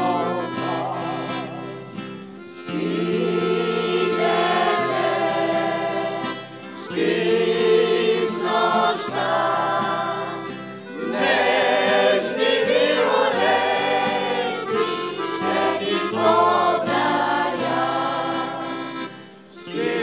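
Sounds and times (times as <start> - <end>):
accordion: 0.0 - 20.0
acoustic guitar: 0.0 - 20.0
vocal group singing in harmony: 2.4 - 20.0.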